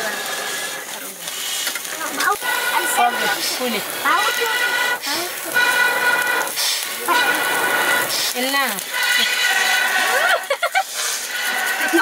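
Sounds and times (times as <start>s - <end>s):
meat sizzling over charcoal: 0.0s - 12.0s.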